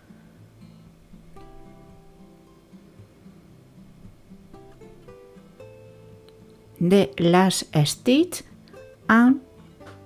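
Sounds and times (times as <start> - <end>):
plucked strings with bass line: 1.0 - 2.6, 3.6 - 6.5.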